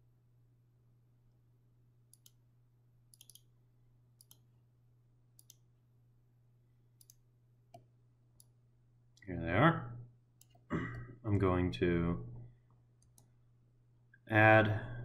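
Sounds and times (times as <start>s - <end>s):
computer mouse clicks: 2.1s - 2.4s, 3.1s - 3.5s, 4.2s - 4.5s, 5.4s - 5.6s, 7.0s - 8.6s, 10.4s - 10.7s, 13.0s - 13.3s.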